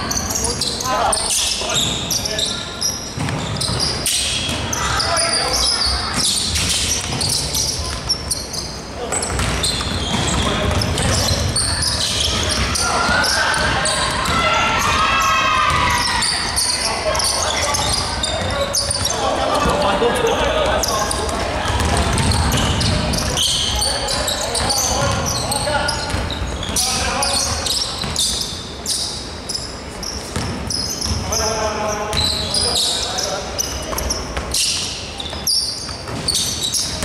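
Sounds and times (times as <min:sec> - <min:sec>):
sneakers squeaking: 0:00.0 - 0:37.0
basketball dribbling: 0:09.2 - 0:14.9, 0:15.7 - 0:16.6, 0:20.6 - 0:23.4, 0:24.5 - 0:27.1.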